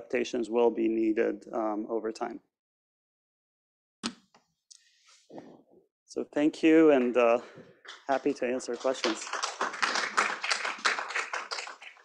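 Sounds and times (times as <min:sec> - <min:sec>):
audience applause: 0:08.1 - 0:12.0.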